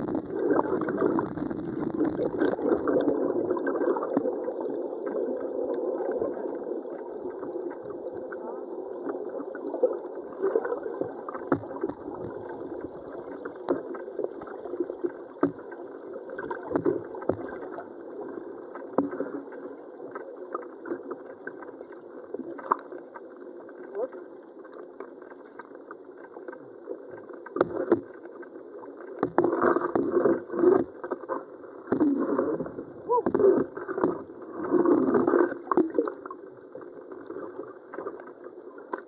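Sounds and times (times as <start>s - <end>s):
muffled underwater river rush: 0.0s - 39.0s.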